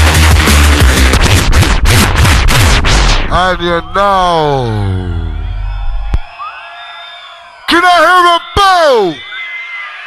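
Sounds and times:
drum and bass bassline: 0.0 - 4.0.

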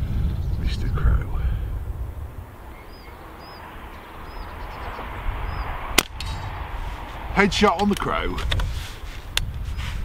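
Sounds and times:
air rifle shot: 6.0 - 6.5.

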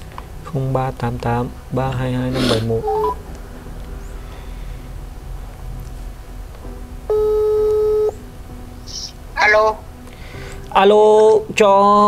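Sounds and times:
telephone ringback tone: 7.1 - 8.1.

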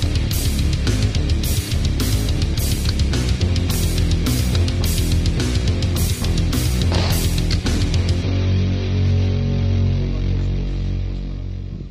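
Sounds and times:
distorted electric guitar chord: 4.0 - 11.9.

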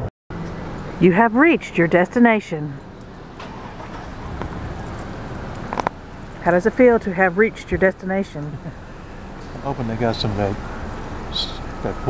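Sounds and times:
low rumble of car traffic: 0.3 - 12.0.

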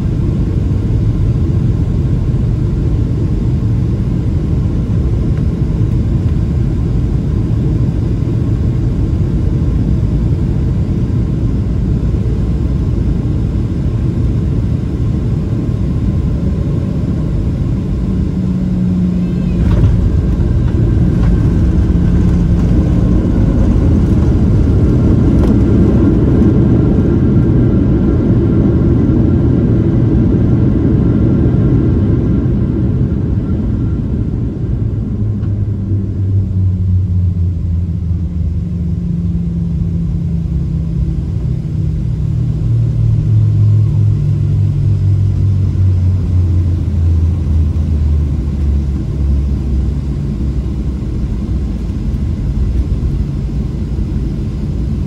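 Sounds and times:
jet engines rumbling: 0.0 - 55.0
runway noise: 19.2 - 26.4.

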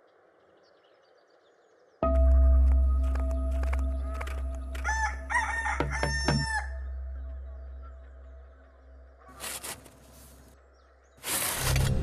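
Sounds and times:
rooster crowing: 4.8 - 6.8.

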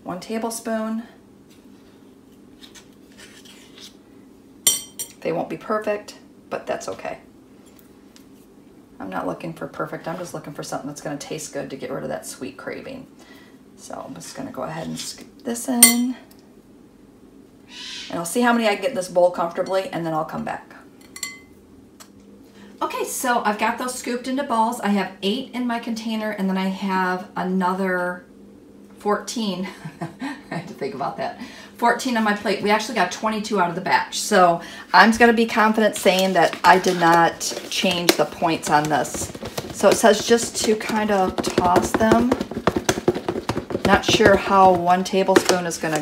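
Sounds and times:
metal spoon clinking glass bowl: 4.7 - 5.2, 15.8 - 16.0, 21.1 - 21.5
spoon clinking against bowl: 15.8 - 16.0
spoons scraping through dough: 35.5 - 46.0.

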